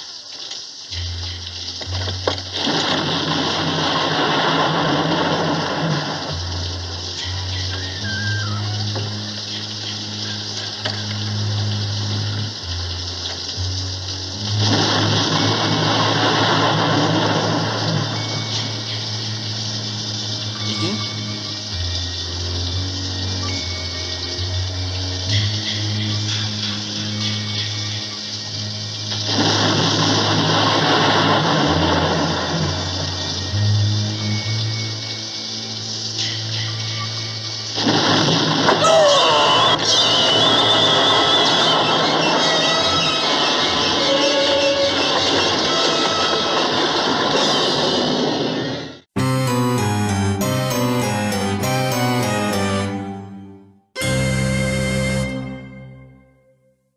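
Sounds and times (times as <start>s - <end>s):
rain hiss: 0.0s - 53.0s
suspense film score: 0.0s - 56.6s.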